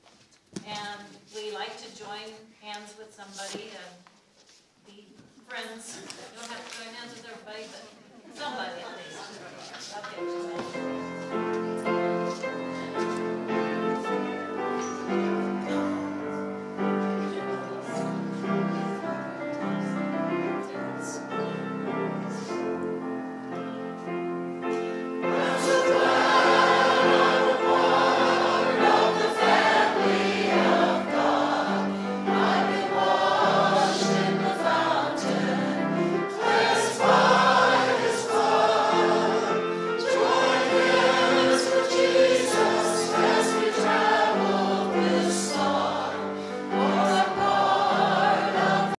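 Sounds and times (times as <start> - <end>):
congregation singing a hymn: 10.0 - 49.0.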